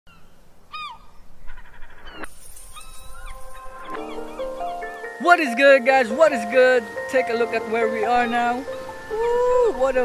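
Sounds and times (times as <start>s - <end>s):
gliding animal calls: 0.7s - 5.1s
music with held tones: 3.2s - 10.0s.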